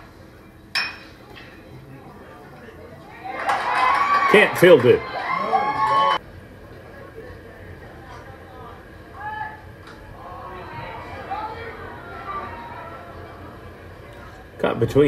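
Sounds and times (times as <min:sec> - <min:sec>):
distant voices chattering: 0:00.0 - 0:15.0.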